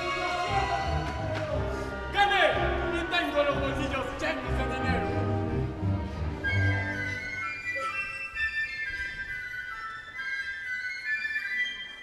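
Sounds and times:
orchestra playing: 0:00.0 - 0:07.7.

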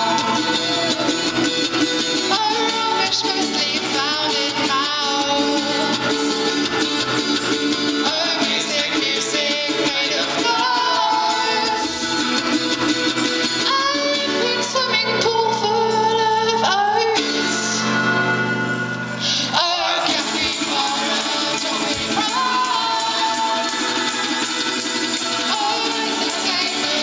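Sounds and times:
instrumental accompaniment: 0:00.0 - 0:27.0
women singing together: 0:08.0 - 0:11.8, 0:19.5 - 0:27.0.

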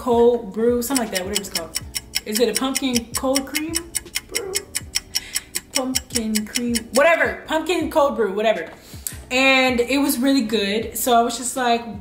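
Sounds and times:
woman's voice: 0:00.0 - 0:03.9, 0:05.7 - 0:12.0
background music with steady beat: 0:00.0 - 0:12.0.

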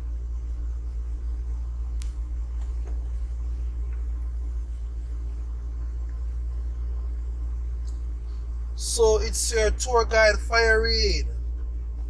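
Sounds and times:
car driving rumble from inside: 0:00.0 - 0:12.0.

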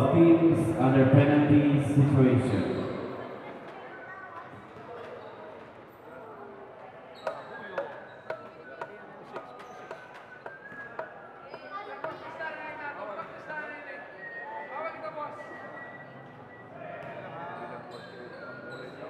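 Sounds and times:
voices in a gym: 0:00.0 - 0:19.0
basketball bouncing on court floor: 0:07.3 - 0:08.5.

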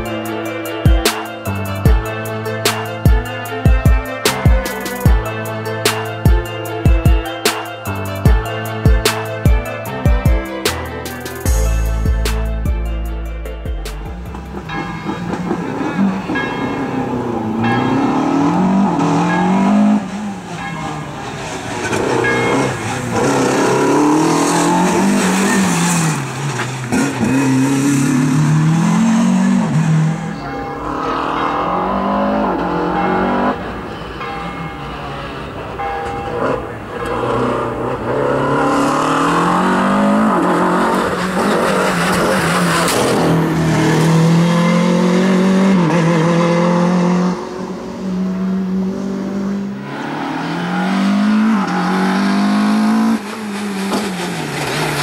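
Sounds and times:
race car engine revving: 0:21.3 - 0:33.8, 0:36.3 - 0:55.0.

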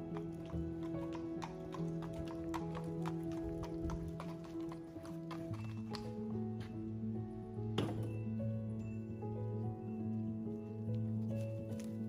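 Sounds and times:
horse hooves clopping on paving: 0:00.0 - 0:06.9
background music: 0:00.0 - 0:12.0.

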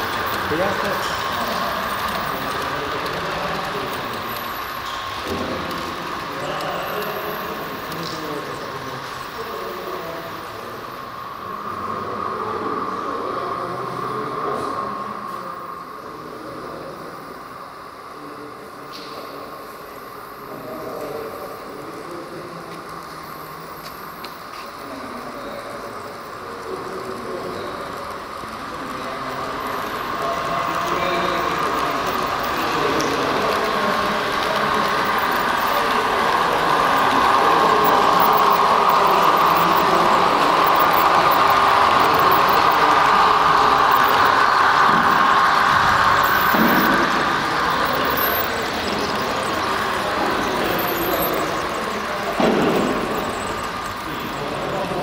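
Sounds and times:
model train whirring and rolling: 0:00.0 - 0:55.0.

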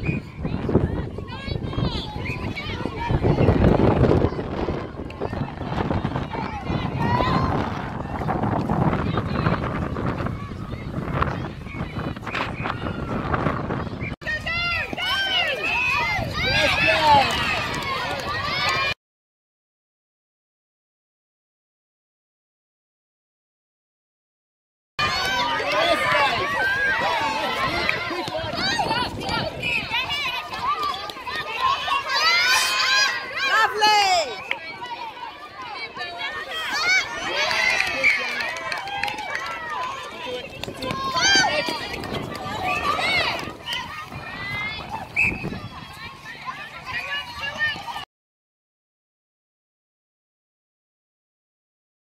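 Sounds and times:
high voices shouting: 0:14.2 - 0:19.0, 0:25.0 - 0:48.0.

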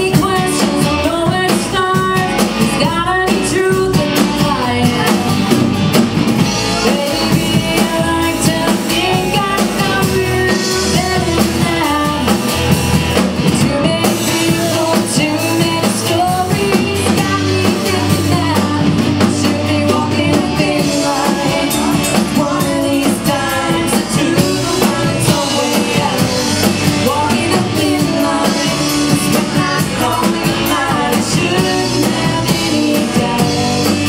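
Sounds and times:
woman singing: 0:00.0 - 0:05.6, 0:06.7 - 0:34.0
bass: 0:00.0 - 0:34.0
drums: 0:00.0 - 0:34.0
guitars: 0:00.0 - 0:34.0.

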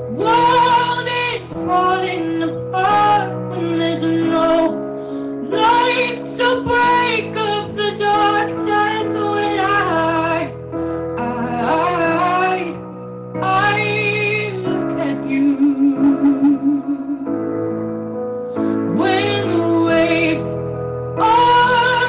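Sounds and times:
woman singing pop ballad: 0:00.0 - 0:10.6, 0:11.2 - 0:17.6, 0:18.8 - 0:22.0
instrumental accompaniment: 0:00.0 - 0:22.0.

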